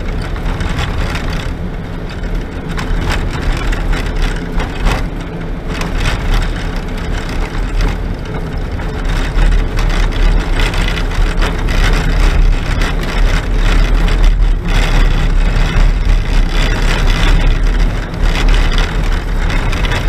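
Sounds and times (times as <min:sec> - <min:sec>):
engine and tyre noise: 0:00.0 - 0:20.0
knocks and rattles from rough road: 0:00.0 - 0:20.0.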